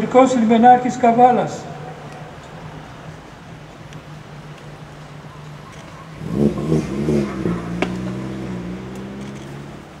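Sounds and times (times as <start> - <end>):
vehicle engine revving: 5.7 - 10.0.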